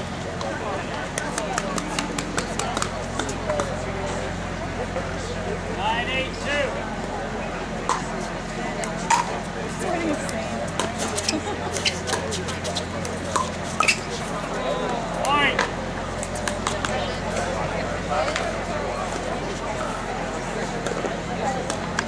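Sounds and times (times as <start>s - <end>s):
indistinct voices: 0.0s - 22.0s
paddles hitting plastic ball: 9.1s - 9.4s.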